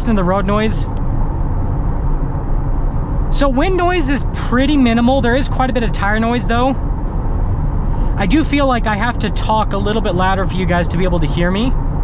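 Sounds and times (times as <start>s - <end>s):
tyre road noise in car cabin: 0.0s - 12.0s.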